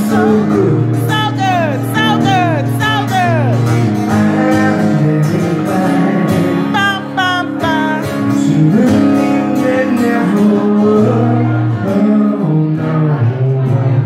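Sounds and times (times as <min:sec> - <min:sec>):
acoustic guitar strumming: 0:00.0 - 0:14.0
man singing into a microphone: 0:00.0 - 0:14.0.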